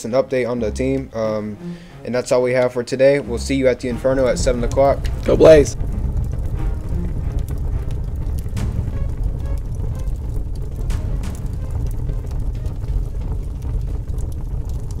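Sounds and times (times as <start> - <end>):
bass-heavy background music: 0.0 - 15.0.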